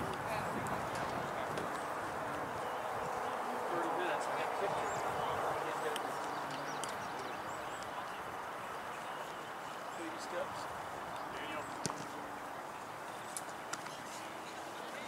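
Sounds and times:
background murmur: 0.0 - 15.0
distant voices calling out: 0.0 - 15.0.

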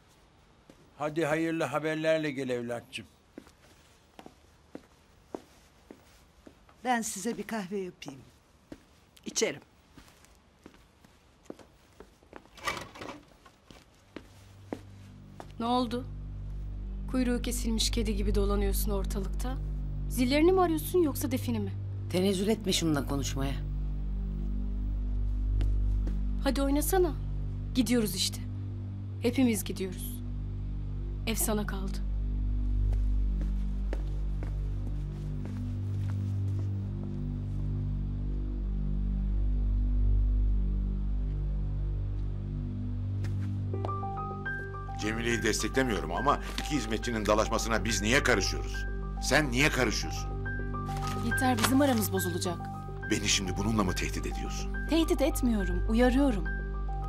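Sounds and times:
tense drama score: 14.5 - 57.0.

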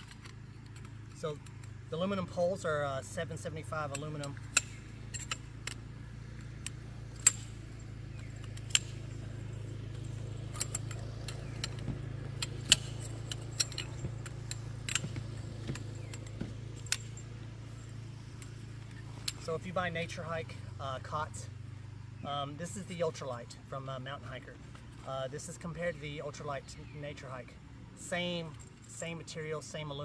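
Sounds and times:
metal poles clinking and clicking: 0.0 - 30.0
steady low hum: 0.0 - 30.0.

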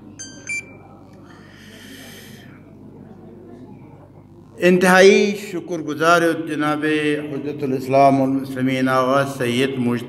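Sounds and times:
short electronic beeps: 0.2 - 0.8.

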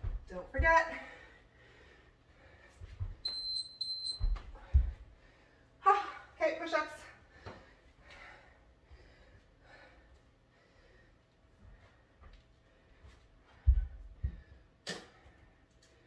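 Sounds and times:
electronic timer beeping: 3.2 - 4.4.

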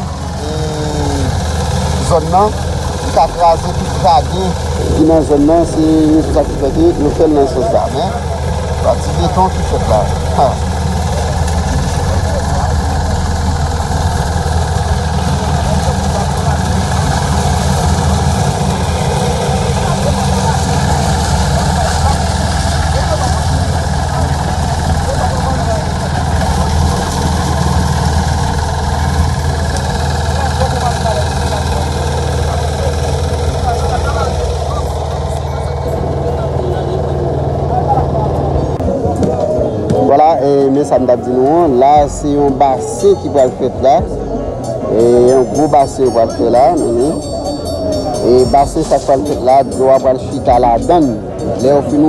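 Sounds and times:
concrete mixer engine running: 0.0 - 52.0
crowd chatter: 0.0 - 52.0.

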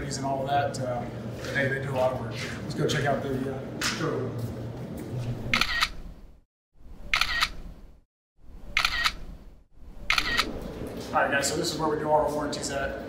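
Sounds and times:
camera shutter click: 5.5 - 6.0, 7.1 - 7.6, 8.7 - 9.3, 10.0 - 10.5.

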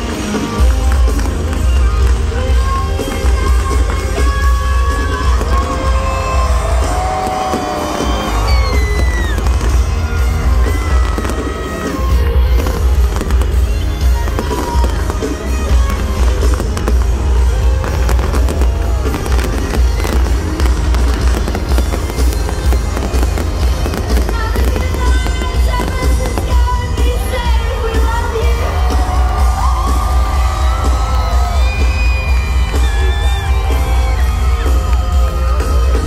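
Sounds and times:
fireworks bangs and crackles: 0.0 - 36.0
loud concert music with bass: 0.0 - 36.0.

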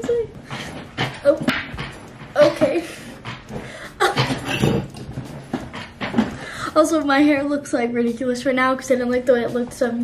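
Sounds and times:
woman laughing and squealing: 3.9 - 4.8.

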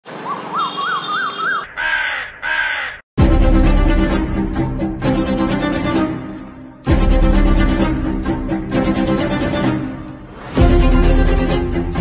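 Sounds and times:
harsh bird caws: 0.1 - 3.1
koel whistled calls: 0.2 - 2.3.

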